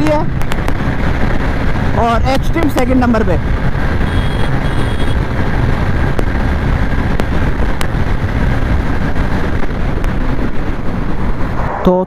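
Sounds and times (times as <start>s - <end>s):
motorcycle engine at top speed: 0.0s - 11.5s
wind rush on microphone: 0.0s - 12.0s.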